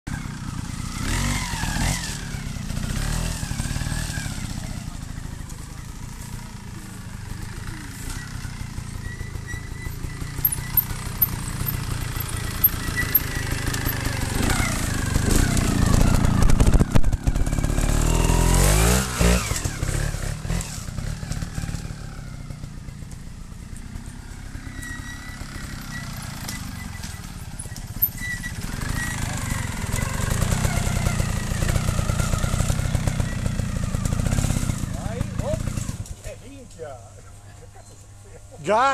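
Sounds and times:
motorcycle engine revving: 0:00.1 - 0:38.5.

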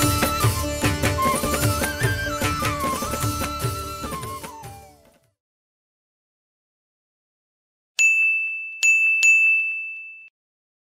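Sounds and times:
bell-like chime dinging: 0:08.0 - 0:10.4.

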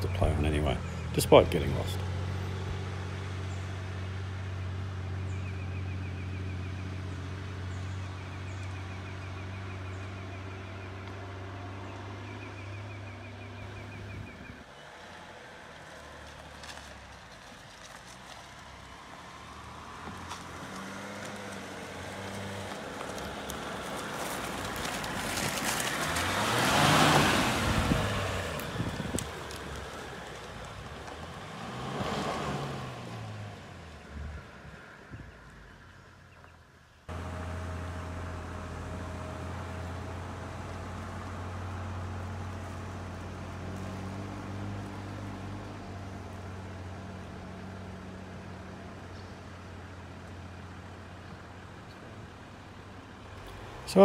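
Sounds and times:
four-wheel drive engine revving: 0:19.5 - 0:34.6, 0:37.1 - 0:49.3, 0:53.4 - 0:54.0
diesel engine running: 0:37.1 - 0:54.0.

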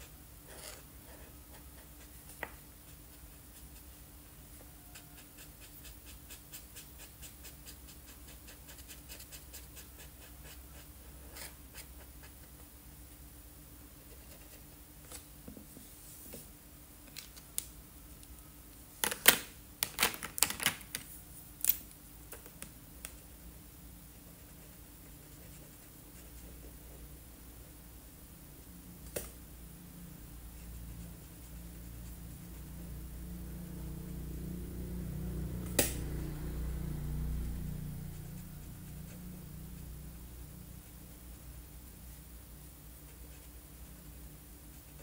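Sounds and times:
steady low hum: 0:00.0 - 0:19.8, 0:20.8 - 0:45.0.

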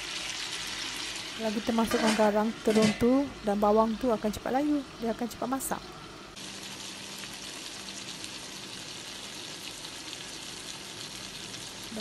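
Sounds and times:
vegetables sizzling in oil: 0:00.0 - 0:12.0.

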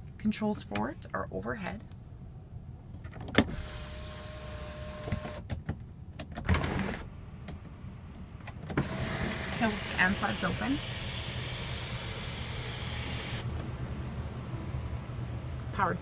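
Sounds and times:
sunroof electric motor whining: 0:03.5 - 0:05.4, 0:08.8 - 0:13.6.

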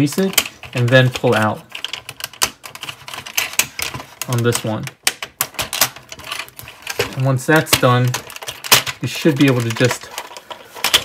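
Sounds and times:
plastic toy parts clicking: 0:00.0 - 0:11.0.

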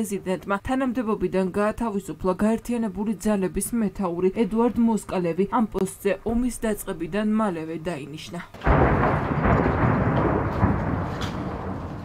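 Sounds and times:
explosion boom and rumble: 0:08.6 - 0:12.0.

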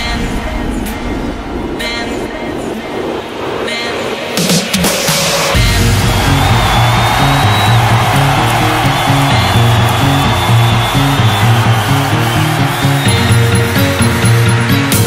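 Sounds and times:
noisy synth wash: 0:00.0 - 0:15.0
synth bass line: 0:05.6 - 0:15.0.

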